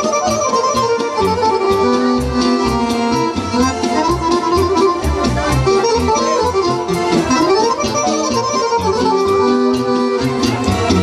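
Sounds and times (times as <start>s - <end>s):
accordion dance music: 0.0s - 11.0s.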